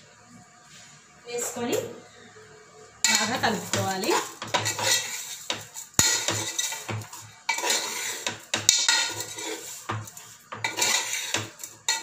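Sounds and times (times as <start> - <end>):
metal spoon scraping pressure cooker: 3.1 - 12.0.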